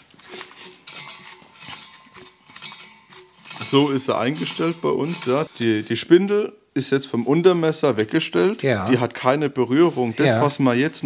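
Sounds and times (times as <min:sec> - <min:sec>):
metallic clinking of mower blades: 0:00.0 - 0:05.9.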